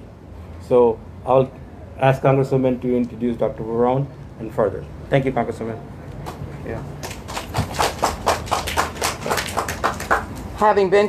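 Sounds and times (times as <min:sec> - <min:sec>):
hands clapping: 0:07.0 - 0:10.5.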